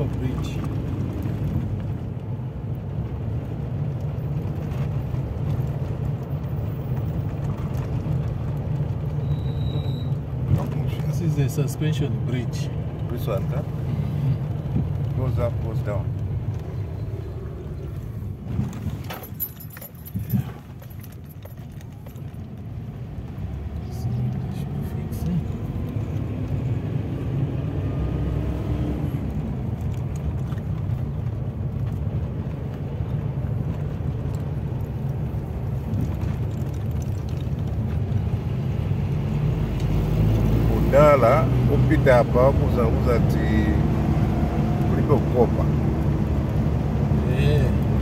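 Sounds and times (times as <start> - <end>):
car engine and tyre rumble: 0.0 - 48.0.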